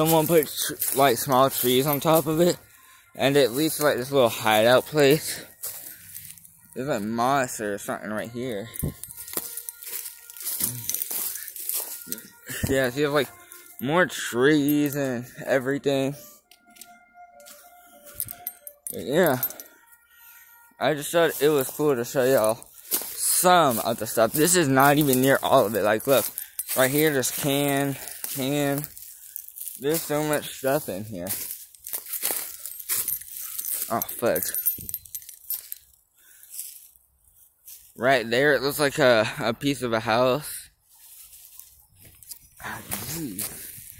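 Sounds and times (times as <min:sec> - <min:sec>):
footsteps crackling through dry leaves: 0:00.0 - 0:15.1, 0:19.2 - 0:39.0, 0:40.4 - 0:43.9.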